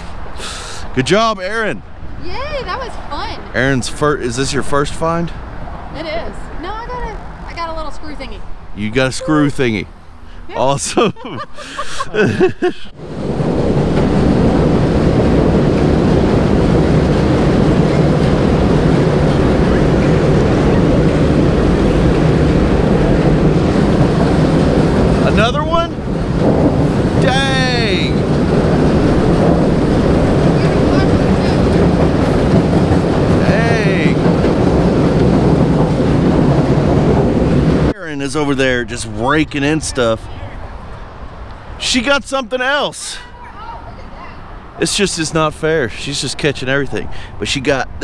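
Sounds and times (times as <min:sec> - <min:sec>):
train rumbling and rattling overhead: 0:00.0 - 0:48.0.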